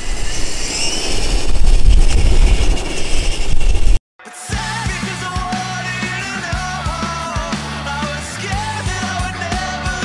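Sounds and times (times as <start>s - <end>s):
loud low rumble: 1.2s - 4.0s.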